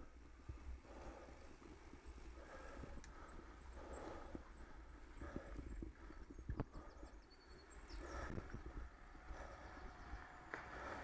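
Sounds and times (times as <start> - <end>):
tyre and wind rumble: 0.0 - 11.0.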